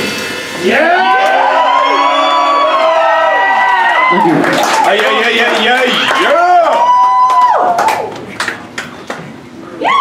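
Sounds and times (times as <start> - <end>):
audience cheering and whooping: 0.6 - 8.3, 9.7 - 10.0.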